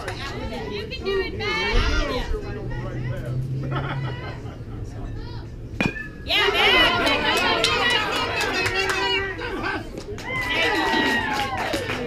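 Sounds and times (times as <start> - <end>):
metal bat hitting ball: 5.8 - 6.3
crowd cheering and shouting: 5.9 - 12.0.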